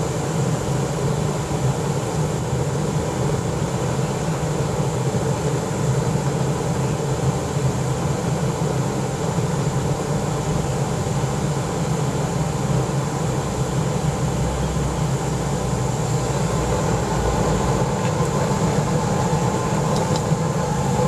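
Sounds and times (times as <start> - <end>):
air blower humming and hissing: 0.0 - 21.0.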